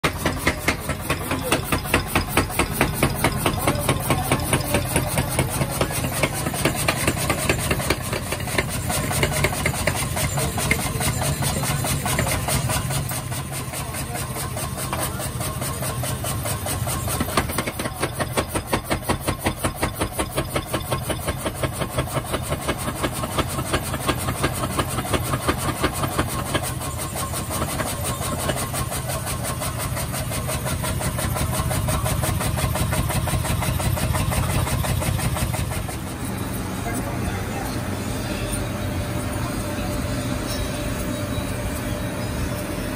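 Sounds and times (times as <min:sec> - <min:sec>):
power hammer striking steel: 0:00.0 - 0:42.9.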